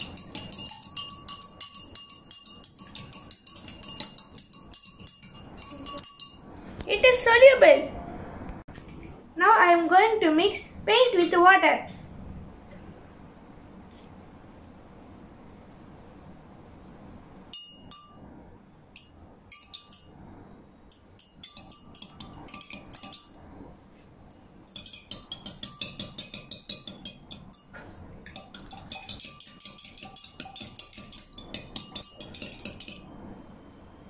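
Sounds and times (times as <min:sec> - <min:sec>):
metal spoon clinking against glass: 0:00.0 - 0:06.5, 0:17.5 - 0:18.3, 0:19.0 - 0:20.2, 0:20.9 - 0:23.5, 0:24.3 - 0:33.1.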